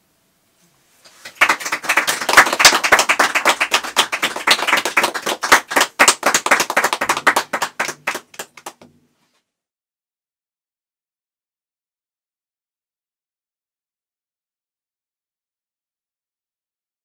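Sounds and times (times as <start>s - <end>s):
audience applauding: 1.1s - 8.9s.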